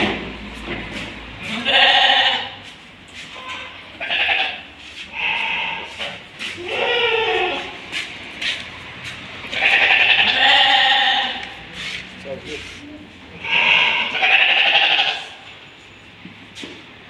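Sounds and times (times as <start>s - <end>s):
sheep bleating: 1.4s - 2.6s, 4.0s - 6.0s, 6.6s - 7.8s, 9.5s - 11.5s, 13.4s - 15.4s.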